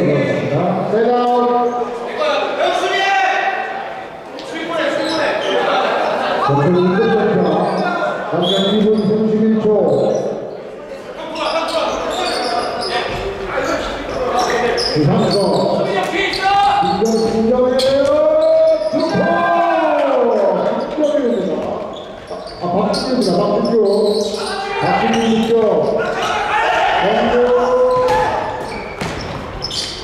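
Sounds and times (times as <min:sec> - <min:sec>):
players calling out: 0:11.0 - 0:30.0
basketball bouncing on wooden floor: 0:27.9 - 0:29.7.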